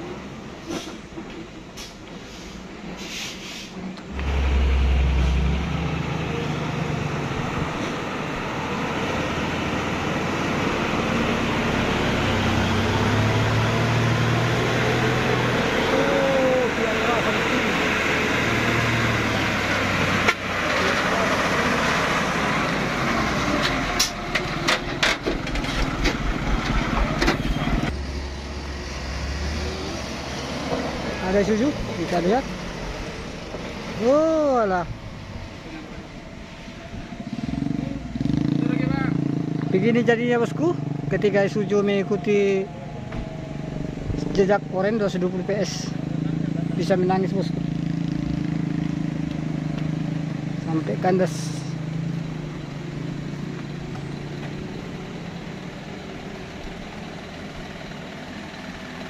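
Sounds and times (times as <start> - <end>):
people's voices: 15.8 - 17.8
truck engine running: 16.4 - 29.2
sharp clicks and knocks: 23.6 - 27.9.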